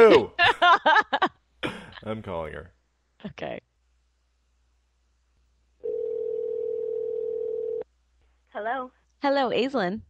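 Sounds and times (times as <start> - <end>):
telephone ringback tone: 5.8 - 7.8.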